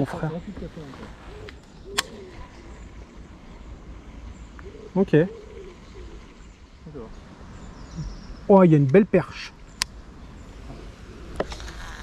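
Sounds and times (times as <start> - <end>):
bird cooing: 1.1 - 3.1, 4.4 - 6.6
sharp click: 9.8 - 10.0.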